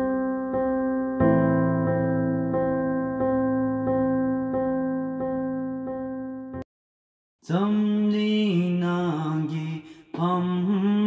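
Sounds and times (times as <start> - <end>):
man chanting in long tones: 7.5 - 11.0.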